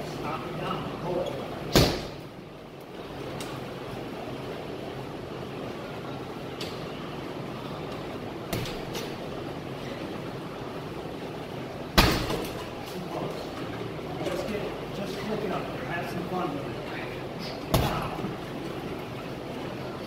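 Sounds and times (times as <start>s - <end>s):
thuds on punching bag: 1.8s - 2.2s.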